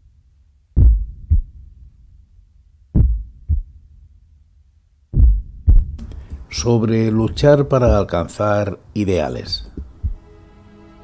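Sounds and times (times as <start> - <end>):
heartbeat thumps: 0.8 - 2.0, 3.0 - 3.9, 5.1 - 6.5, 7.3 - 8.1, 9.7 - 10.3.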